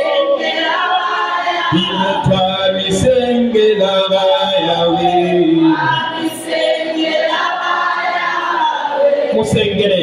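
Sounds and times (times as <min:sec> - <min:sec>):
congregation singing: 0:00.0 - 0:10.0.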